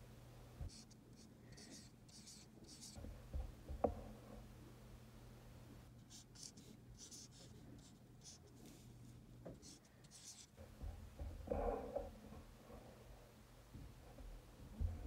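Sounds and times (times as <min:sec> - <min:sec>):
marker writing on a whiteboard: 0:00.6 - 0:03.9, 0:06.0 - 0:08.8, 0:09.5 - 0:10.8.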